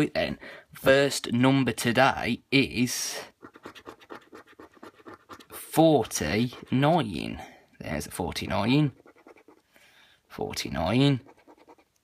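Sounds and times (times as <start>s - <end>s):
scratchcard being scratched: 3.3s - 7.1s, 8.8s - 9.6s, 11.1s - 12.0s.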